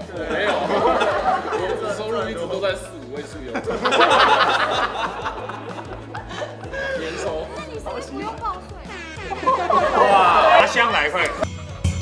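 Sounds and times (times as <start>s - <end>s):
background music: 0.0s - 12.0s
people talking over one another: 6.6s - 11.5s.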